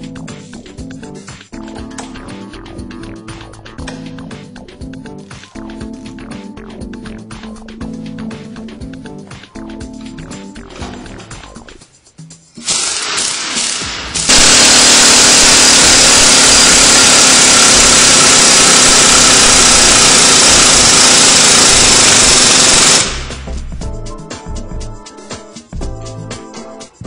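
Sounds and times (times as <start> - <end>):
pneumatic spring compressor running: 12.6 - 23.4.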